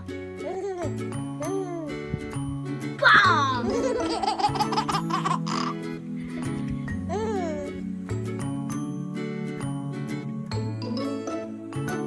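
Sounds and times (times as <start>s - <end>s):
baby laughing: 0.0s - 2.0s, 3.2s - 7.8s
background music: 0.0s - 12.0s.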